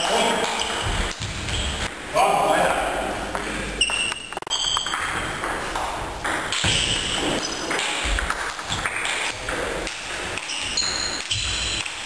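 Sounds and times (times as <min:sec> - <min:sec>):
sports hall background noise: 0:00.0 - 0:12.0
table tennis ball bouncing: 0:00.4 - 0:02.0, 0:03.3 - 0:12.0.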